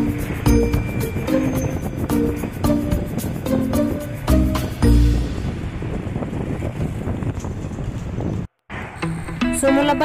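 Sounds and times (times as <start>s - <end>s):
wind rushing over microphone: 0.0s - 9.2s
bus road noise: 0.0s - 10.0s.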